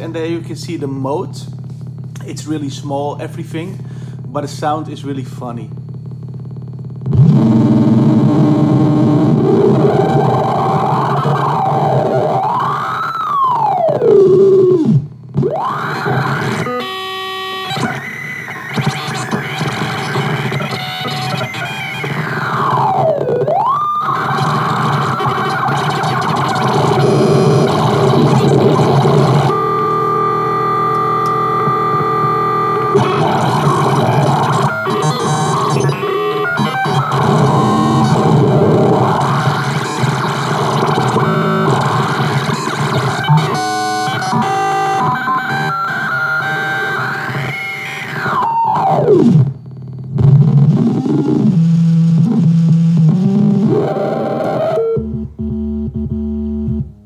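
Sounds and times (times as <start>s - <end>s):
distorted electronic synthesizer drones: 0.0s - 57.0s.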